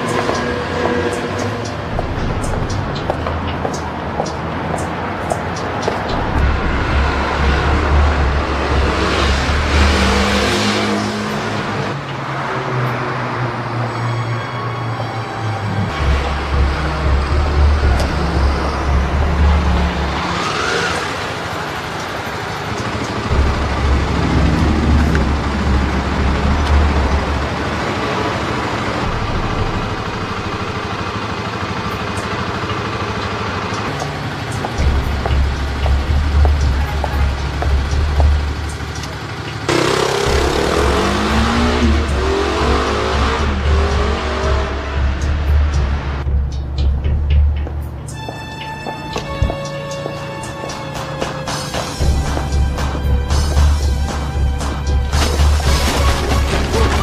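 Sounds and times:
engine noise: 0.0s - 57.0s
music with heavy bass: 1.8s - 3.9s, 6.1s - 10.6s, 15.9s - 20.5s, 23.3s - 27.7s, 33.9s - 39.0s, 39.7s - 57.0s.

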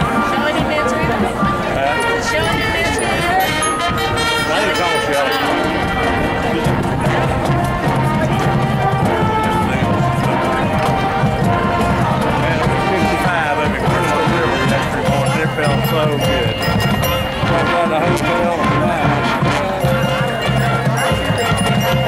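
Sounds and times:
marching band playing: 0.0s - 22.0s.

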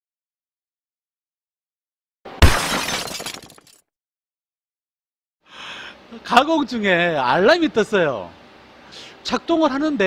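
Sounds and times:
glass-like crash: 2.3s - 3.8s.

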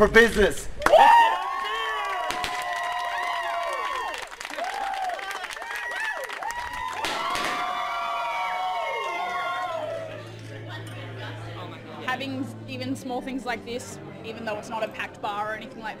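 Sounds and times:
crowd cheering and clapping: 0.8s - 10.7s
long whooping shouts: 0.9s - 10.1s.

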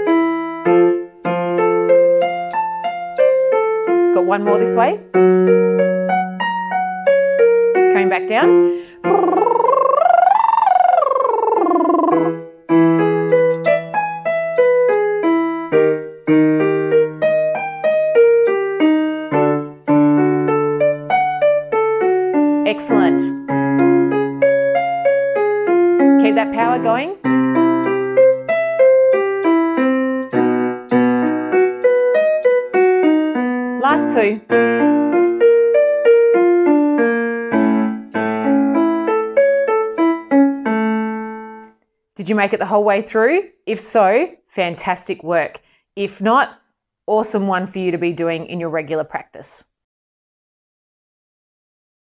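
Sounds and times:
keyboard piano arpeggios: 0.0s - 41.8s
singer's lip trill: 9.0s - 12.4s.

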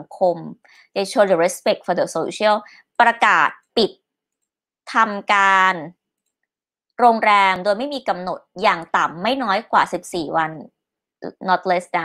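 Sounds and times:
woman speaking: 0.0s - 4.0s, 4.9s - 6.0s, 7.0s - 12.0s.

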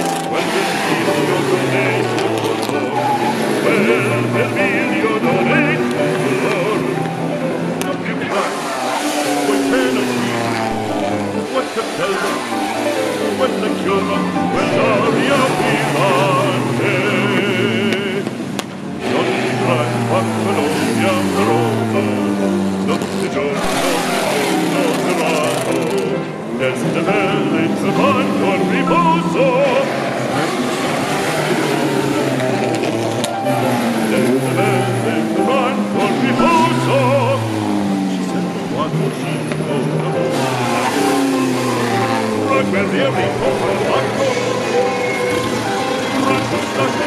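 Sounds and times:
operatic singing: 0.0s - 47.0s
racing car engine passing by: 0.0s - 47.0s.

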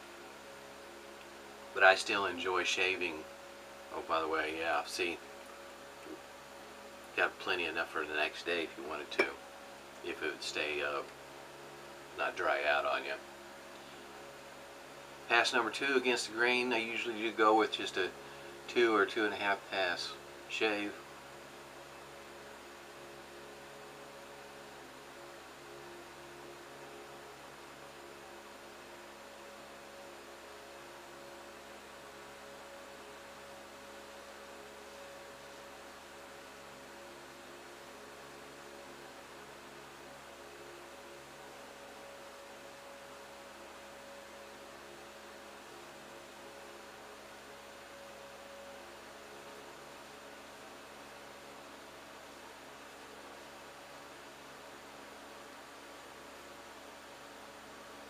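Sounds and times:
faint low hum with tones: 0.0s - 58.0s.

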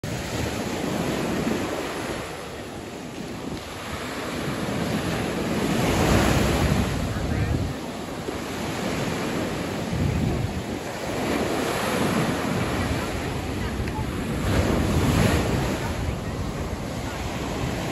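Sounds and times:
small waves breaking on sand: 0.0s - 17.9s
wind rumbling on microphone: 0.0s - 17.9s.

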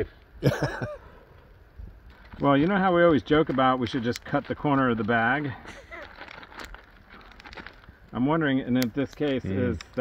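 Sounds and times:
plastic bag crinkling: 2.0s - 10.0s.

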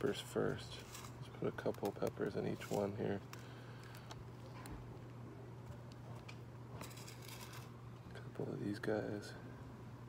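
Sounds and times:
rustling of seeds in plastic cup: 0.0s - 5.1s, 6.8s - 7.8s
steady low hum: 0.0s - 10.0s.

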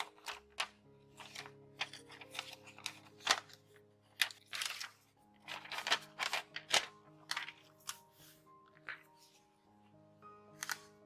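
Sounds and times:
paper crinkling: 0.0s - 9.5s, 10.5s - 11.0s
faint instrumental music: 0.0s - 11.0s.

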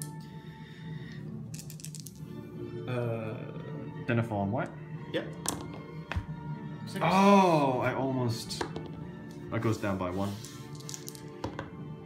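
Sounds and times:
background music: 0.0s - 12.0s
dice rattling in a hand: 1.5s - 2.2s, 10.6s - 11.3s
dice clicking on a mat: 1.6s - 2.2s, 5.4s - 6.2s, 10.4s - 11.7s.

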